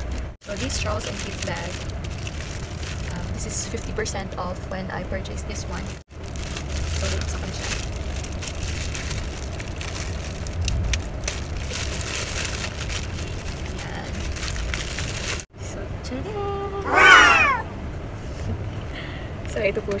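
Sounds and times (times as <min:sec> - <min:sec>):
plastic packaging crinkling: 0:00.4 - 0:03.7, 0:05.8 - 0:15.5
high-pitched vocal cry: 0:16.8 - 0:17.7.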